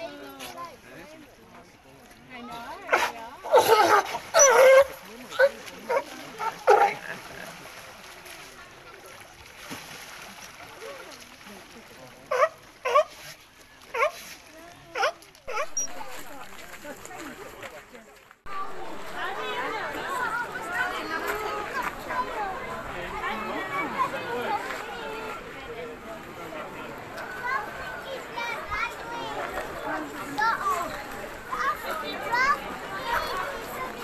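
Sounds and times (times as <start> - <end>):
people's voices: 0.0 - 9.6, 10.2 - 34.0
children chattering and calling out: 0.0 - 17.7, 18.5 - 34.0
sea lion barks: 2.9 - 7.1, 12.3 - 13.2, 14.9 - 16.2.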